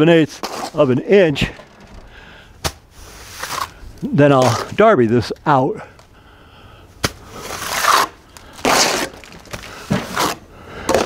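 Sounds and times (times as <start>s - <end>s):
darby scraping wet stucco: 0.2s - 4.8s, 7.3s - 11.0s.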